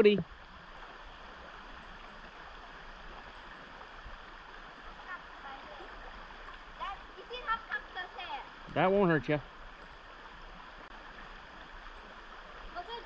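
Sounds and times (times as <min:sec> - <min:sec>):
shallow river flowing: 0:00.0 - 0:13.0.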